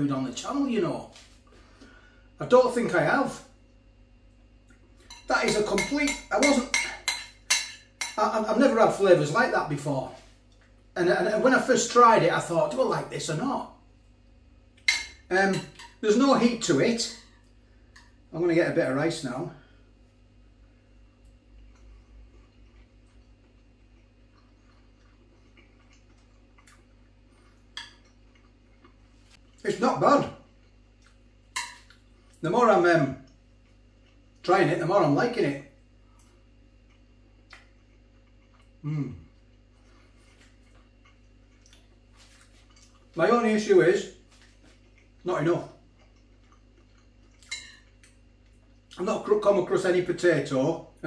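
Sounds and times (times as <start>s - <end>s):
man chewing food: 10.2s - 10.9s, 20.0s - 29.7s, 30.4s - 32.4s, 33.2s - 34.5s, 35.8s - 43.2s, 44.2s - 49.0s.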